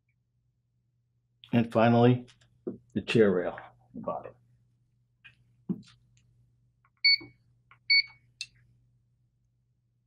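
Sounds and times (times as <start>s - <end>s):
short electronic beeps: 7.9s - 8.2s.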